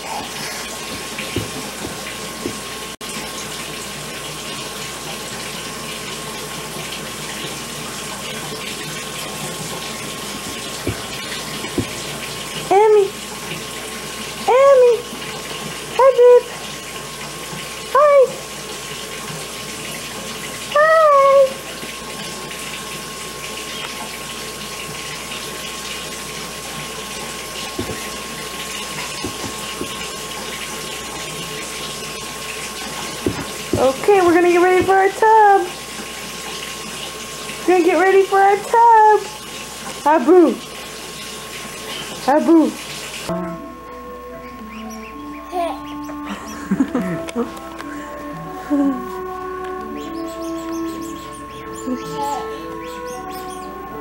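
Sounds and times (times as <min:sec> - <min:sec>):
baby vocalisations: 0:00.0 - 0:00.9, 0:45.4 - 0:46.1, 0:51.8 - 0:52.8
tap water running into tub: 0:00.0 - 0:43.3, 0:44.5 - 0:54.0.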